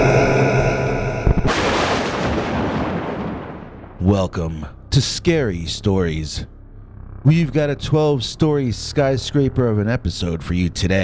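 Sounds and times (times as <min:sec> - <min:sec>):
boom rumble: 0:01.1 - 0:04.0.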